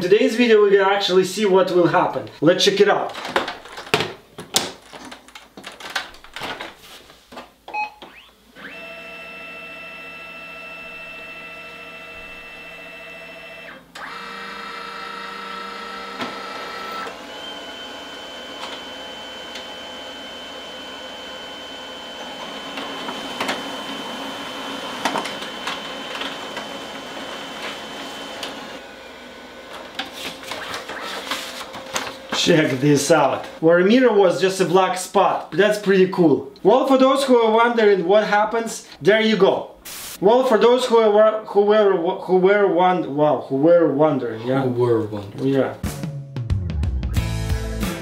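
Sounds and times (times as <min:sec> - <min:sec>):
page feeding rattles: 0:03.1 - 0:07.5, 0:29.7 - 0:32.8
printer high whine: 0:08.1 - 0:33.6
scanner motor hum: 0:08.6 - 0:29.8.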